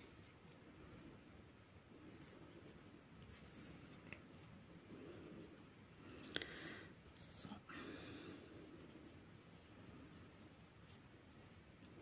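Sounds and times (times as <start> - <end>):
yarn rustling through fabric: 0.0 - 12.0.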